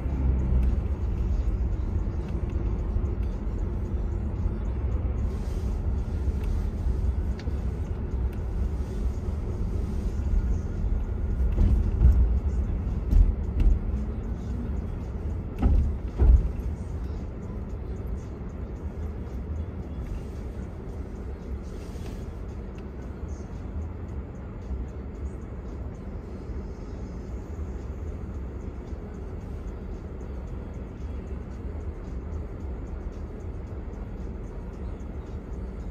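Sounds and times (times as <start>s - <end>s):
car driving rumble: 0.0s - 35.9s
thumps: 15.6s - 16.6s.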